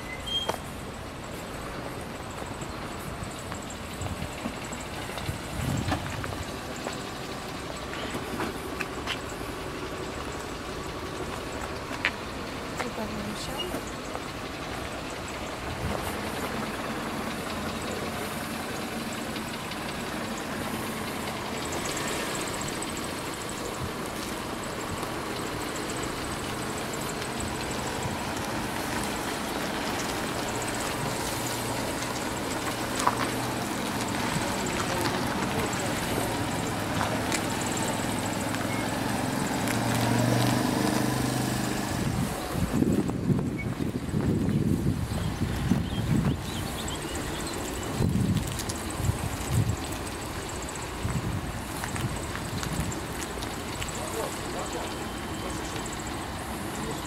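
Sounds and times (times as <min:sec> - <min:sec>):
car engine running at low revs: 0:00.0 - 0:57.0
wind buffeting microphone: 0:02.5 - 0:07.0, 0:41.8 - 0:54.2.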